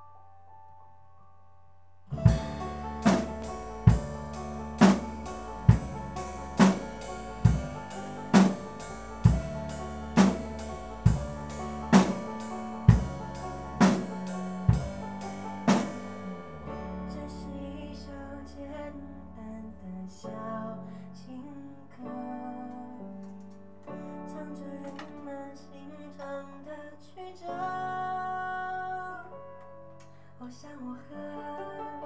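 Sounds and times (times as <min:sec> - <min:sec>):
drum kit backbeat: 0:02.1 - 0:16.4
backing music: 0:02.1 - 0:17.0.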